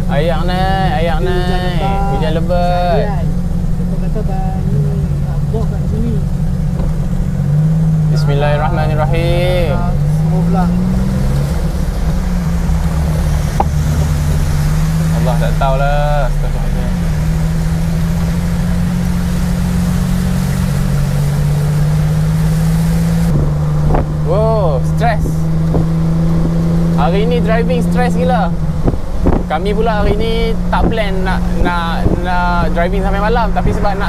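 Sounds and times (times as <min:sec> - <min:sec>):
road noise: 0:00.0 - 0:34.0
van engine droning: 0:00.0 - 0:34.0
heavy rain hiss: 0:07.8 - 0:23.3.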